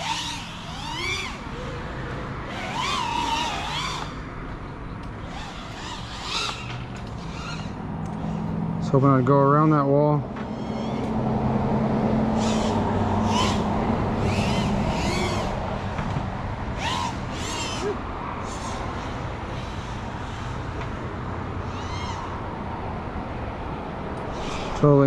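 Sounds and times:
quadcopter motors buzzing: 0:00.0 - 0:09.7, 0:10.3 - 0:23.2, 0:23.8 - 0:25.0.

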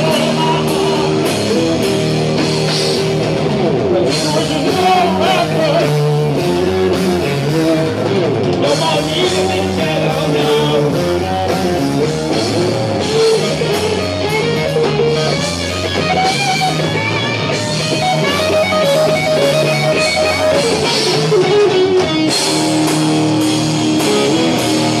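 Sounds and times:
drum kit: 0:00.0 - 0:25.0
electric guitar lines: 0:00.0 - 0:25.0
low bass line: 0:00.0 - 0:25.0.

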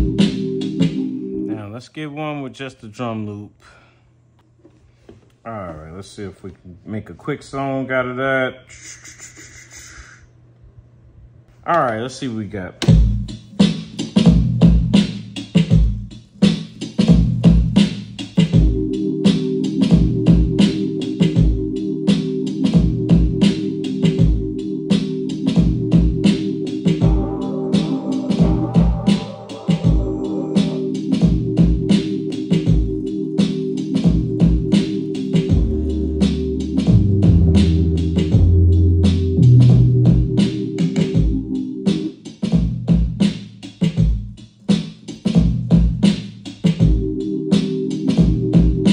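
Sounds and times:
drum loop: 0:00.0 - 0:01.6, 0:12.8 - 0:48.9
sustained chord sample: 0:00.0 - 0:01.6, 0:18.6 - 0:41.9
bass notes: 0:00.0 - 0:01.7, 0:17.1 - 0:43.2, 0:46.8 - 0:48.9
higher synth layer: 0:00.0 - 0:01.8, 0:18.6 - 0:42.1.

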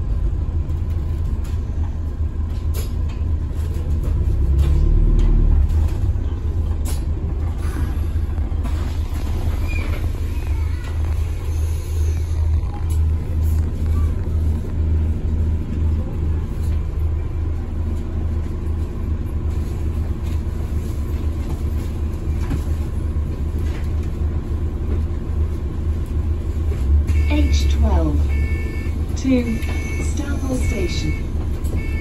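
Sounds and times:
bus engine and road rumble: 0:00.0 - 0:32.0.

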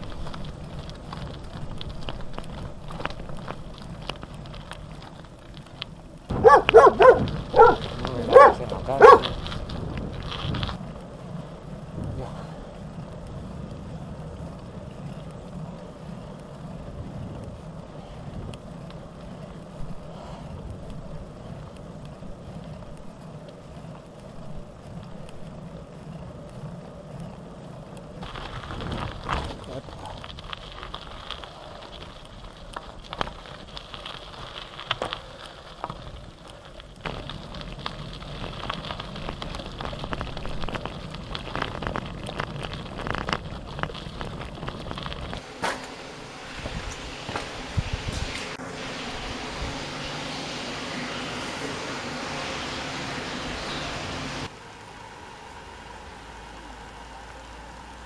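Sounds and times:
bike knocks and rattles: 0:00.0 - 0:10.9, 0:32.8 - 0:48.5
tyres crunching on dirt track: 0:00.0 - 0:54.6
tyres rumbling on paved road: 0:00.0 - 0:58.0.

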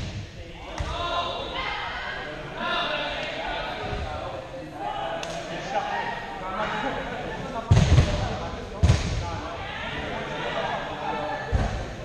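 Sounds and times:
players chattering and shouting: 0:00.0 - 0:12.0.

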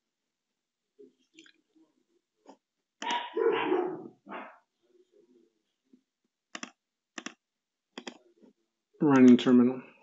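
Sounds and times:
dog barking: 0:03.0 - 0:04.6
soft mouse clicks: 0:06.5 - 0:07.4, 0:08.0 - 0:08.2.

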